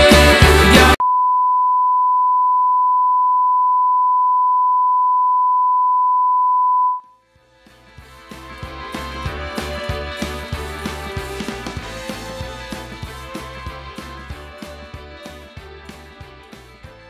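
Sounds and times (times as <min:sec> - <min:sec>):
folk-rock music: 0:00.0 - 0:01.0, 0:07.5 - 0:17.0.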